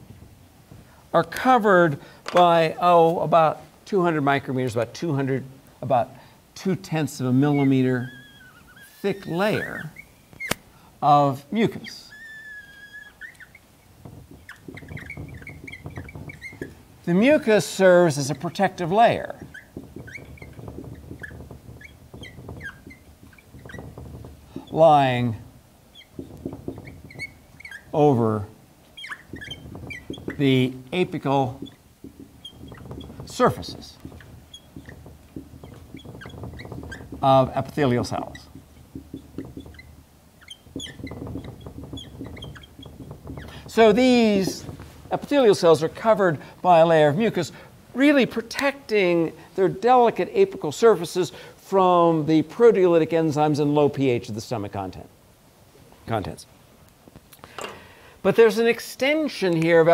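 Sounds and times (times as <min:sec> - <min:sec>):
marker squeaking on whiteboard: 0:04.2 - 0:51.4.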